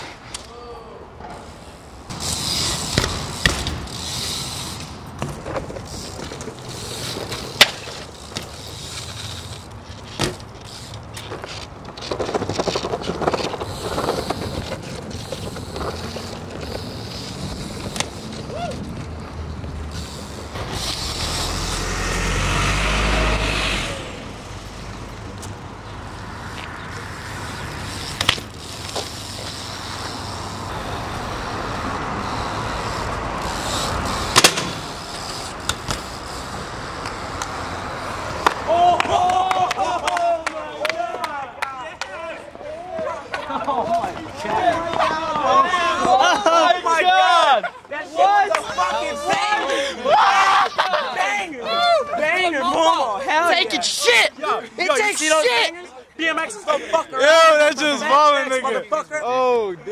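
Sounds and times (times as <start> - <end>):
road traffic: 0.0 - 59.9
bike tyres rolling over paving: 1.3 - 22.3, 23.8 - 41.2
bike knocking on ground: 10.0 - 10.4.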